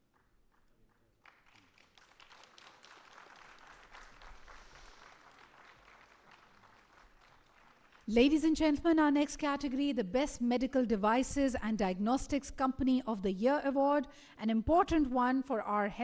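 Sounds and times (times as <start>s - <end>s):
faint audience applause: 0.0s - 8.1s.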